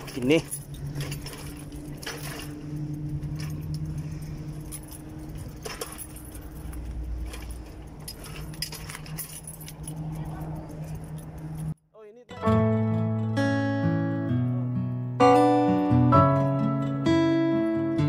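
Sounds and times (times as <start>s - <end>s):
light jangling: 0.0s - 11.8s.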